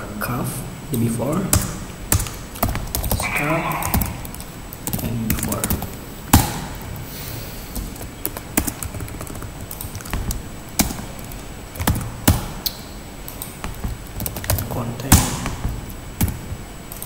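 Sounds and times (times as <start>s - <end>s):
computer keyboard typing: 8.0s - 12.1s.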